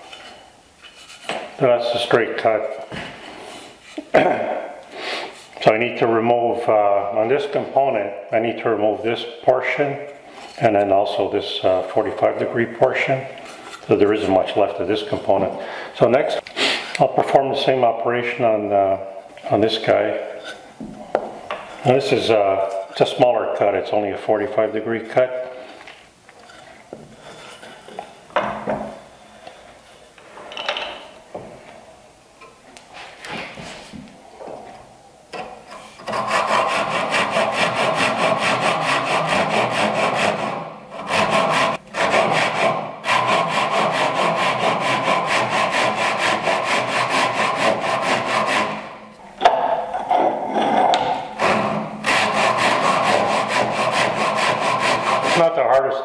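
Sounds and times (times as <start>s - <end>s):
saw strokes through wood: 36.0s - 48.9s, 51.4s - 55.6s.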